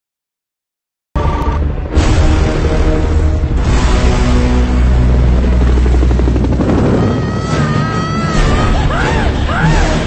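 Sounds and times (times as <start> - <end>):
helicopter rotors chopping: 3.5 - 10.0.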